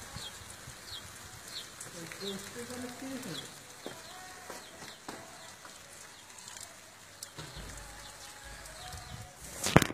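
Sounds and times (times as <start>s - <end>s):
rain falling: 0.0s - 9.9s
small birds chirping: 0.1s - 9.4s.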